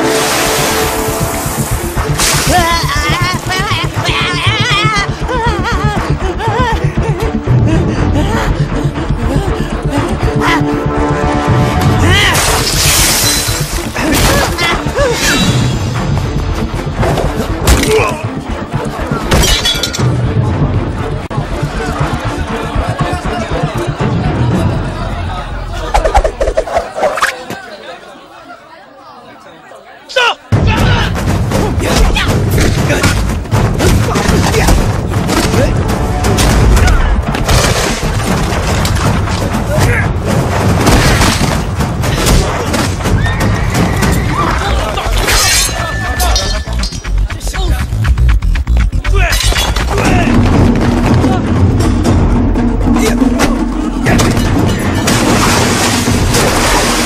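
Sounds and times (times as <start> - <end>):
background film score: 0.0 - 27.6, 30.5 - 57.0
people shouting: 2.5 - 6.0, 43.0 - 46.4
loud shattering crash: 54.1 - 57.0.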